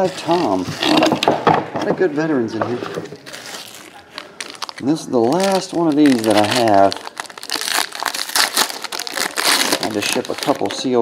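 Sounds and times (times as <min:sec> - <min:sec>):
foil wrapper crinkling: 0:03.2 - 0:11.0.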